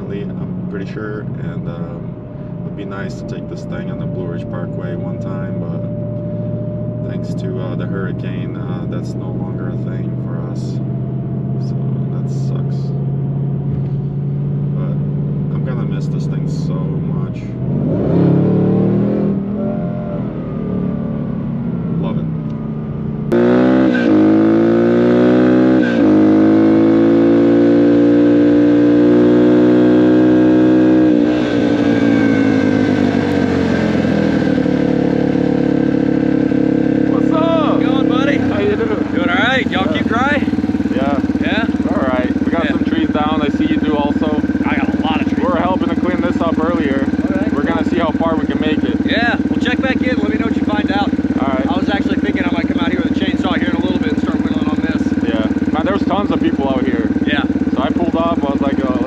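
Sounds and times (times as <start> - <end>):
people talking: 0.0 - 6.0, 7.0 - 10.8, 11.6 - 12.9, 14.8 - 17.5, 22.0 - 22.3, 33.6 - 34.0, 37.1 - 59.0
car engine cruising: 0.0 - 59.0
motorcycle engine revving and idling: 0.0 - 59.0.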